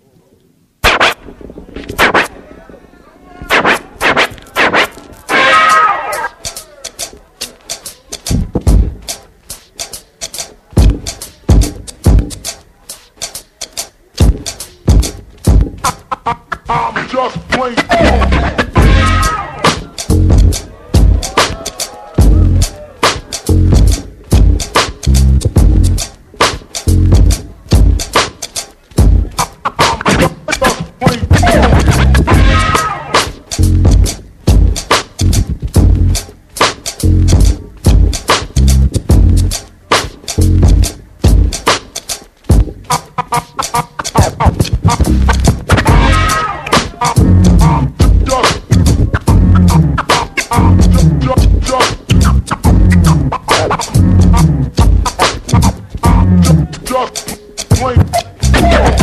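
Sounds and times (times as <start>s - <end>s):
vinyl record scratching: 0.2s - 59.0s
beat with heavy bass: 0.8s - 2.4s, 3.4s - 59.0s.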